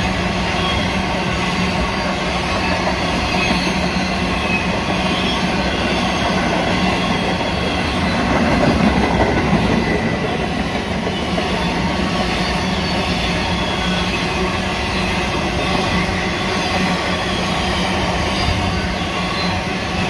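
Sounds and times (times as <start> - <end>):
freight train wheels rumbling on rails: 0.0 - 20.0.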